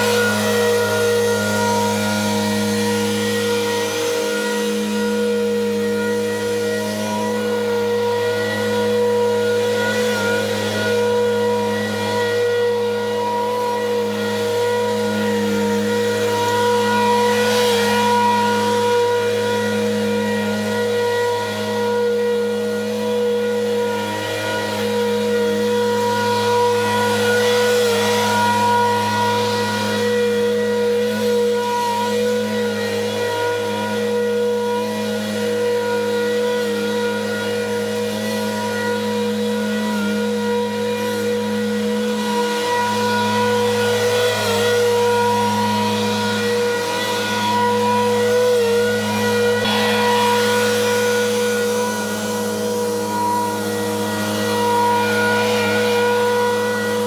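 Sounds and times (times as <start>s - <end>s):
mower blades mulching leaves: 0.0s - 57.0s
riding mower running: 0.0s - 57.0s.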